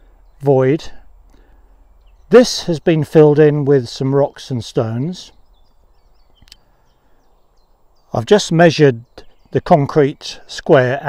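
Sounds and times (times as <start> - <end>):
faint birds chirping: 0.0 - 11.0.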